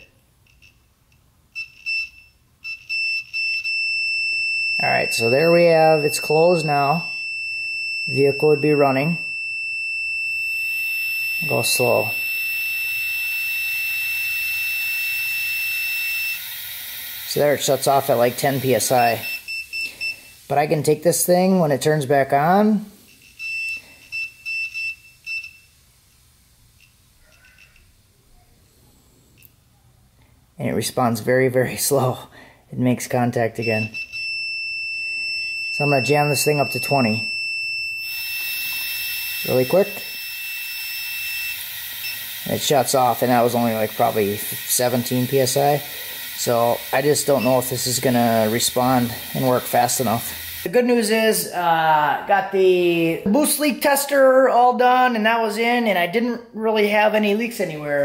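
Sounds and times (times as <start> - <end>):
multimeter continuity buzzer beeping: 1.6 - 28.0, 33.6 - 50.8
short high electronic beeps: 33.7 - 43.4, 44.0 - 50.6.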